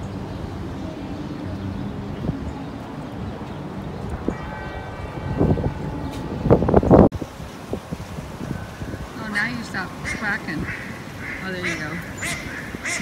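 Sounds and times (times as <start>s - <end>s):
wind buffeting microphone: 0.0s - 13.0s
church bells ringing: 4.3s - 7.1s.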